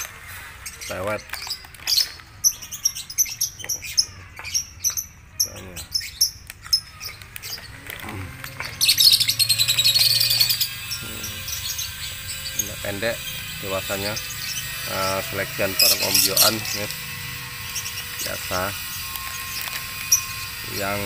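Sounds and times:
lovebirds chattering: 0.0s - 21.0s.

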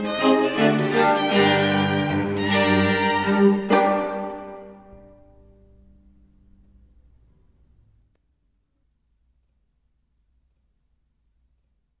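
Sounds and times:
faint low rumble: 4.8s - 12.0s.

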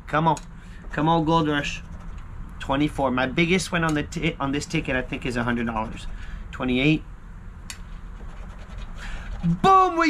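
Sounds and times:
scraping lottery ticket coating: 5.2s - 6.2s, 8.2s - 9.8s.

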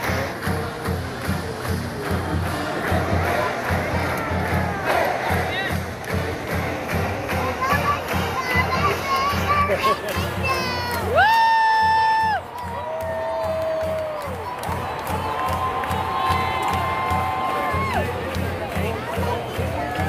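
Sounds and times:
marching band playing: 0.0s - 11.1s
stadium crowd: 0.0s - 20.0s.

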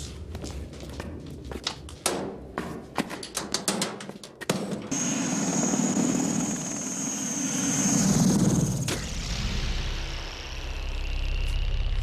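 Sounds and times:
helicopter turbine whine and rotor: 4.9s - 12.0s.

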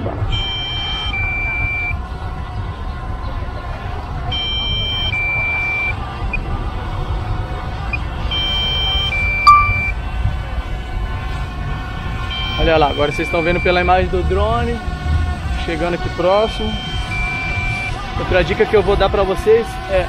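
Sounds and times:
two-tone electronic beep: 4.4s - 6.0s, 8.3s - 9.9s, 16.5s - 18.0s.

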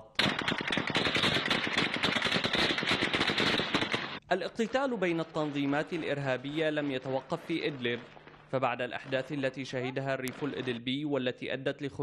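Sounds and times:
automatic gunfire: 0.2s - 4.2s.

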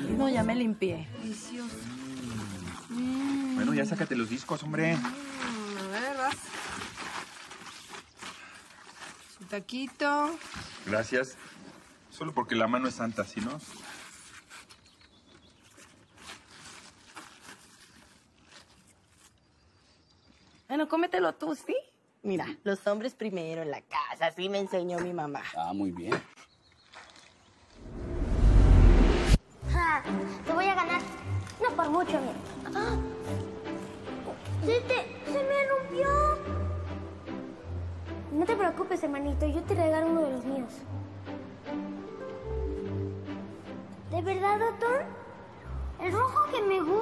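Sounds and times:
plastic and paper crinkling: 1.8s - 12.3s, 12.9s - 20.6s
rising whoosh with deep rumble: 27.8s - 29.4s.

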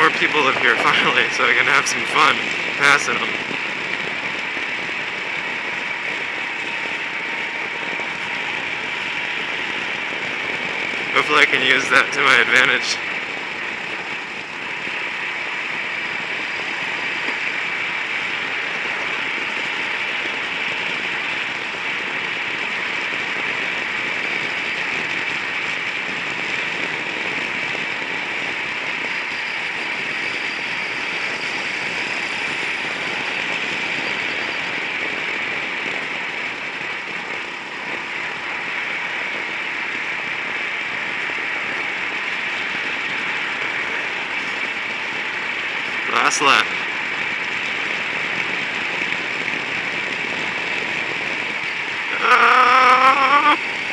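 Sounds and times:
road noise: 0.0s - 20.5s
rushing wind: 0.0s - 53.9s.

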